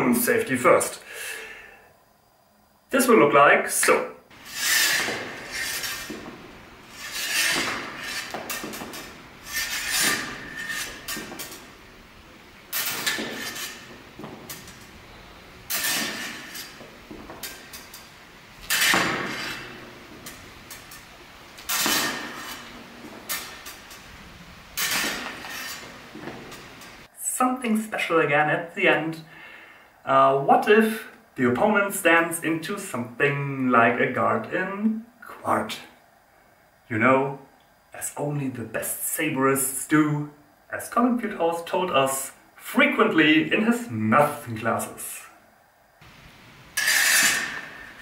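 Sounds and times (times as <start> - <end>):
fencing blades clinking: 4.4 - 11.9, 12.7 - 15.1, 15.7 - 24.2, 46.8 - 48.0.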